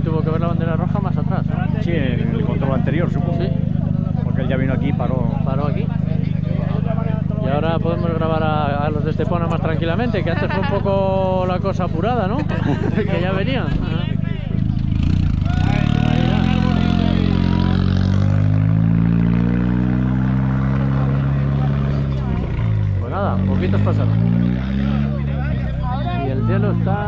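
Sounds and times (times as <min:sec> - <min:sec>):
race car engine running hard: 0:00.0 - 0:27.0.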